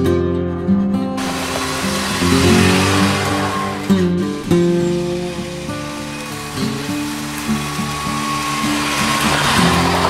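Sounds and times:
acoustic guitar music: 0.0s - 10.0s
car driving past on dirt: 1.2s - 10.0s.

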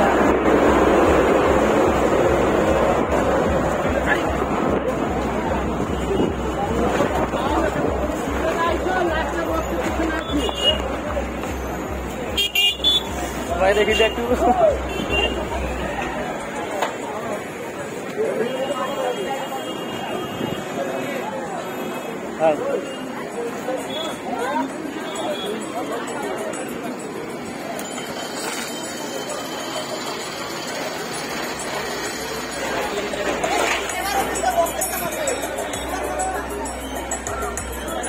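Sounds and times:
muffled distant dj music: 0.0s - 16.8s, 22.8s - 38.0s
street and crowd noise: 0.0s - 38.0s.

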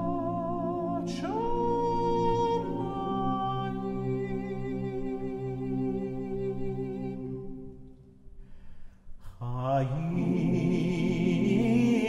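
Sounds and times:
cantor and men's choir chanting: 0.0s - 7.6s, 9.4s - 12.0s.

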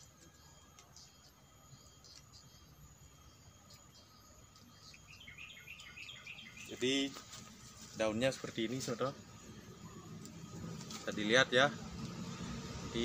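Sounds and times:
small bird chirping: 0.0s - 7.1s
faint outdoor hiss: 0.0s - 13.0s.

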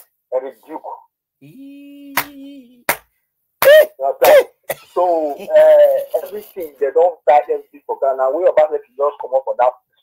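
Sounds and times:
person coughing: 3.8s - 5.0s.

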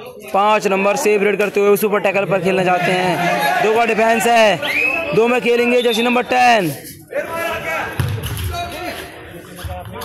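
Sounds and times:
players calling out: 1.9s - 9.2s.

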